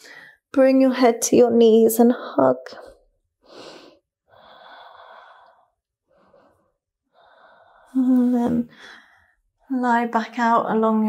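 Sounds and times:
woman breathing softly: 0:03.4 - 0:09.5.

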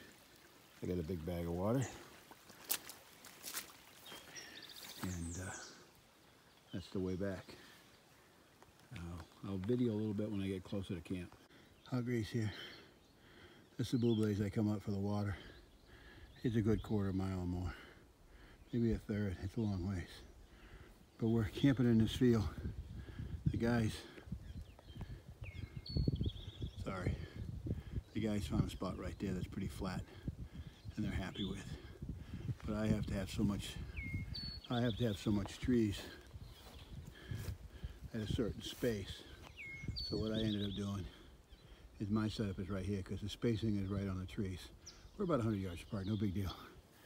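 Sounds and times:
faint bird calls: 0:00.0 - 0:47.0.

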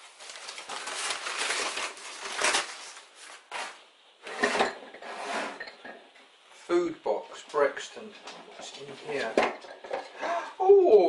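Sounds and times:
wrapping paper crinkling: 0:00.0 - 0:03.8.

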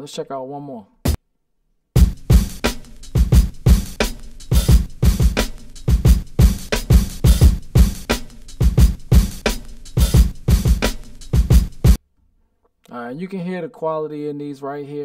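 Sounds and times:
boom bap drum loop: 0:02.0 - 0:12.0.

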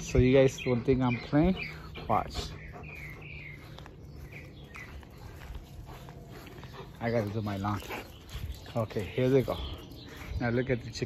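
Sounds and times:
faint bird chirps: 0:00.5 - 0:11.0.

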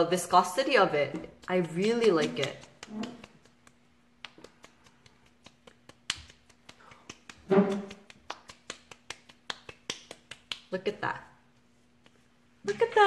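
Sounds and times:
sticky hands rubbing and patting: 0:00.3 - 0:13.0.

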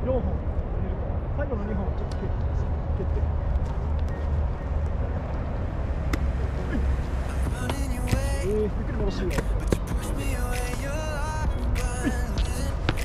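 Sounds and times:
distant voices: 0:00.0 - 0:13.0
sharp taps: 0:07.5 - 0:08.4.

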